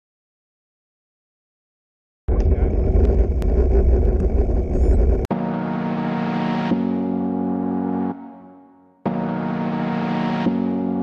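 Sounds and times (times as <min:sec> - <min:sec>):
wind rumbling over microphone: 0:02.3 - 0:05.3.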